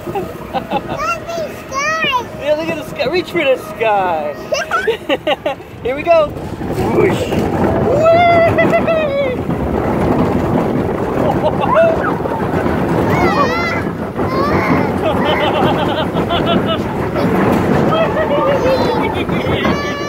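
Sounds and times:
roller coaster car moving: 0:00.0 - 0:20.0
riders yelling and shrieking: 0:06.8 - 0:09.8, 0:11.1 - 0:20.0.

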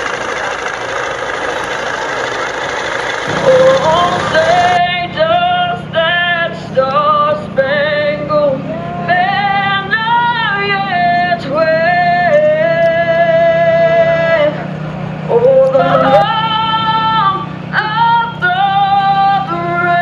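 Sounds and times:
steady low hum: 0:00.0 - 0:20.0
person singing long notes: 0:03.3 - 0:06.2, 0:15.3 - 0:17.2.

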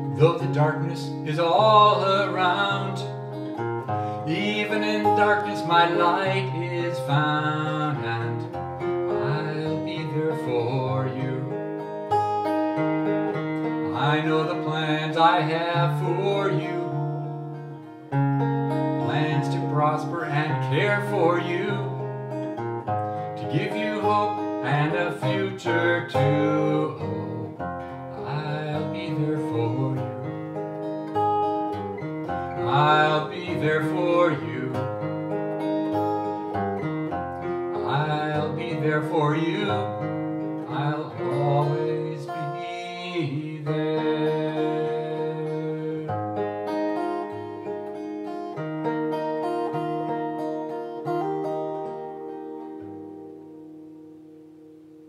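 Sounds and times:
acoustic guitar playing: 0:00.0 - 0:55.0.

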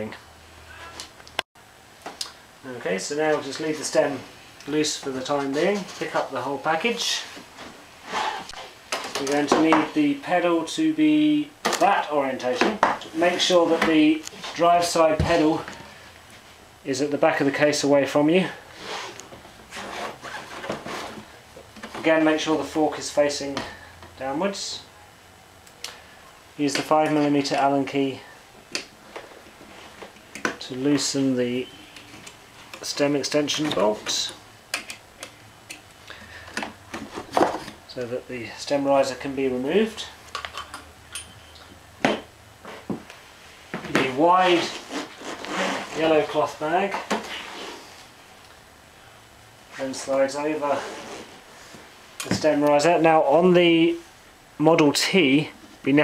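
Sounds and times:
bike scraping against a case: 0:18.7 - 0:21.4, 0:44.4 - 0:48.1, 0:50.7 - 0:51.8.

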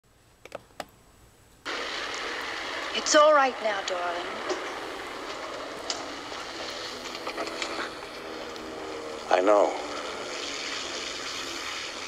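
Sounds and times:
steady hiss: 0:00.1 - 0:12.0.

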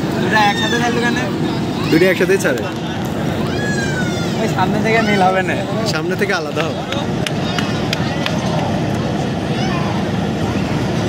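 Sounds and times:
faint passenger voices: 0:00.0 - 0:11.0
train rumbling: 0:01.3 - 0:11.0.

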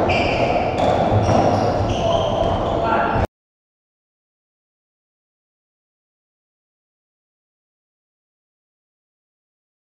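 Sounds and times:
shoes squeaking on wooden floor: 0:00.0 - 0:03.2
steady court din: 0:00.0 - 0:03.3.

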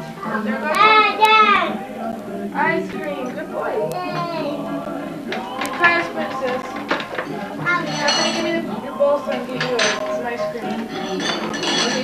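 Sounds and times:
indistinct voices: 0:00.0 - 0:12.0
dishes and cutlery clinking: 0:04.1 - 0:12.0.

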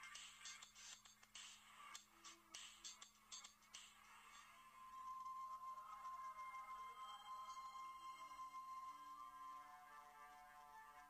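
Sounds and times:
faint electronic music: 0:00.0 - 0:11.0.

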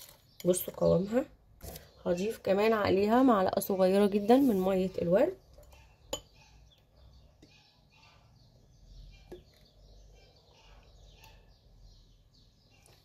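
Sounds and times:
spoon stirring paste: 0:00.0 - 0:11.8.

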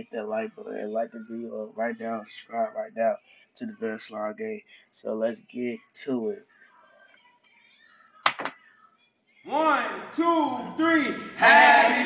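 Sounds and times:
faint background noise: 0:00.0 - 0:12.0.

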